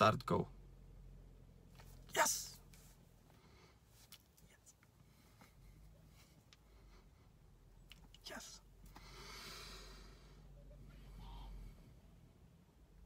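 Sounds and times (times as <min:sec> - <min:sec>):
soft breath out: 0:08.9 - 0:12.0.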